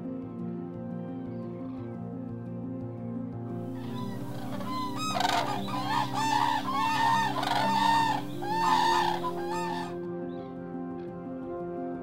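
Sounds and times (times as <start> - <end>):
soft background music: 0.0 - 12.0
cranes trumpeting calls: 3.8 - 10.0.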